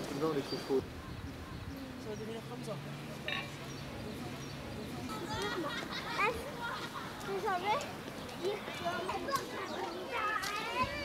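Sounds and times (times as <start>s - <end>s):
young children calling and chattering: 0.0s - 11.0s.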